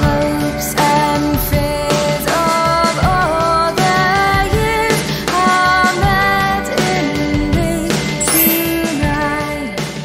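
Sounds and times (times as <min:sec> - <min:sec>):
instrumental accompaniment with beat: 0:08.2 - 0:09.3
person singing: 0:08.2 - 0:09.4.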